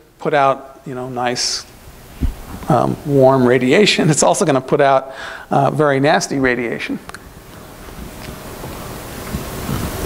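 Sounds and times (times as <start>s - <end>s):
rushing noise on microphone: 2.0s - 3.0s, 7.3s - 10.0s.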